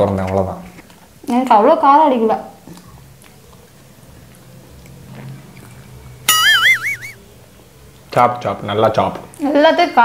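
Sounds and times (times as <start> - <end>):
high warbling comic tone: 6.3 - 7.2.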